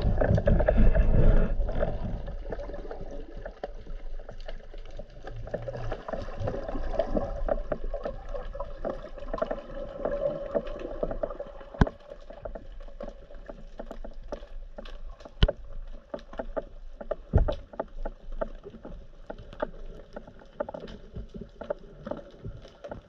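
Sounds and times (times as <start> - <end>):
underwater clicks and knocks: 0.0 - 23.0
underwater rush of water: 0.0 - 23.0.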